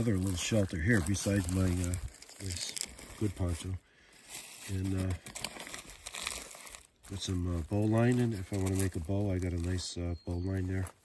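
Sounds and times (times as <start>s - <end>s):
plastic bags crinkling: 0.0s - 9.9s.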